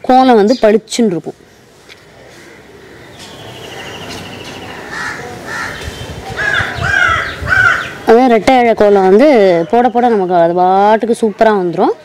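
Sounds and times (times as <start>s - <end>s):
crows cawing: 2.3s - 4.0s, 4.8s - 8.0s.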